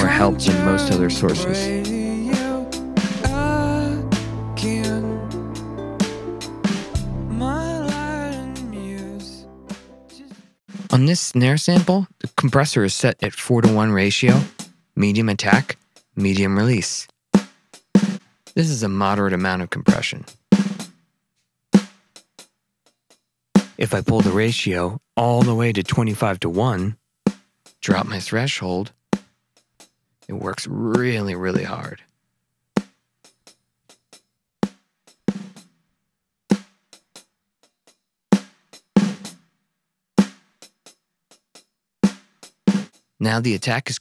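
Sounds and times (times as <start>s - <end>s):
compressed snare drum hits: 13.6s - 14.8s
snare drum hit: 14.3s - 14.6s.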